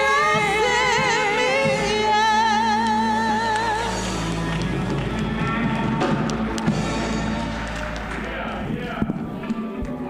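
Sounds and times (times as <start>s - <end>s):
church band playing: 0.0s - 10.0s
drum and cymbal hits: 3.8s - 9.6s.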